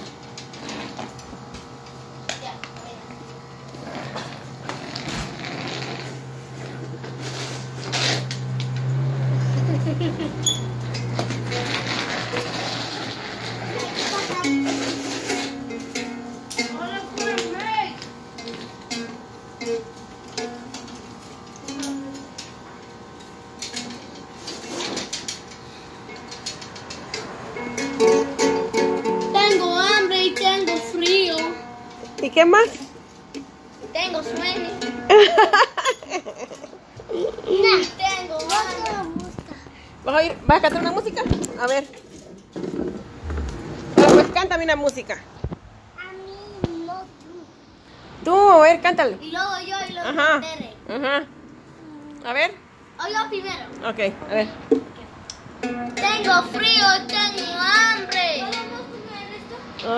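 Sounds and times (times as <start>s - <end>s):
steady low hum: 0.0s - 49.2s
suitcase wheels rattling on concrete: 3.7s - 8.7s, 10.4s - 18.8s, 40.0s - 45.2s
ukulele strummed and plucked: 13.7s - 17.7s, 27.5s - 32.1s, 55.6s - 59.1s
child singing: 56.0s - 59.7s.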